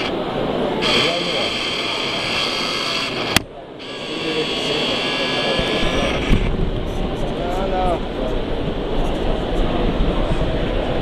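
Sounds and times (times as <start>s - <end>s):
crowd hubbub: 0.0s - 11.0s
electric motor whining: 0.8s - 6.5s.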